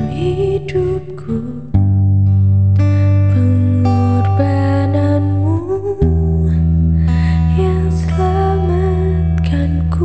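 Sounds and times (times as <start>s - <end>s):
woman singing: 0.0s - 2.1s, 2.8s - 10.0s.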